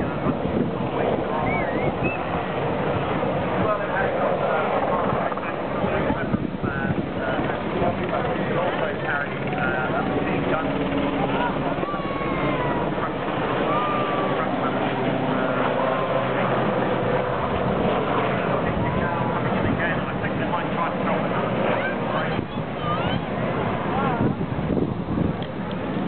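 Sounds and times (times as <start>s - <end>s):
people's voices: 0.0s - 24.5s
helicopter flying past: 0.0s - 26.0s.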